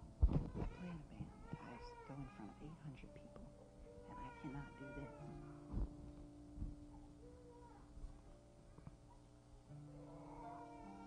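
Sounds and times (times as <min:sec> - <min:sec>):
soft sustained music: 0:00.0 - 0:11.0.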